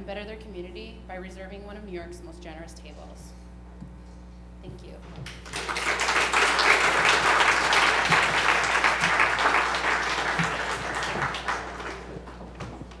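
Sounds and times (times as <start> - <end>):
audience applauding: 5.3 - 13.0.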